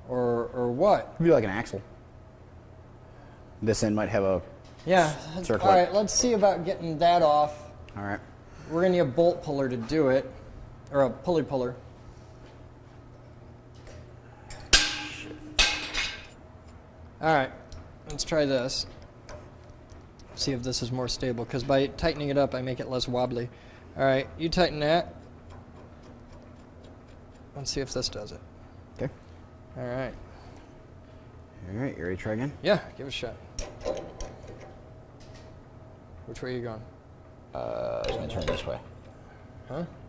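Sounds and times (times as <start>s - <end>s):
metal clanking on steel: 14.5s - 16.4s, 33.6s - 34.8s, 38.0s - 38.9s.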